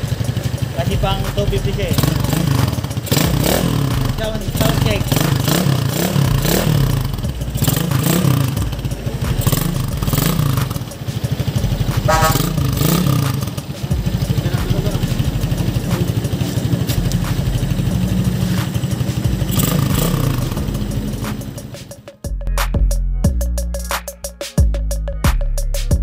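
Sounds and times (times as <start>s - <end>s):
motorcycle engine revving and idling: 0.0s - 22.2s.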